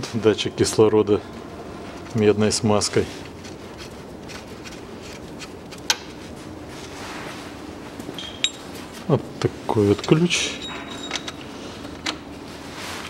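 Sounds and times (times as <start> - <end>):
low background noise: 0.0 - 13.0
tool clinking on metal: 8.2 - 8.7, 10.4 - 11.4.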